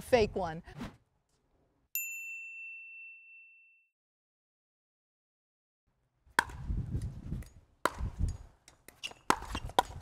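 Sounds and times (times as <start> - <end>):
paddles hitting plastic ball: 6.4 - 6.6, 7.4 - 10.0.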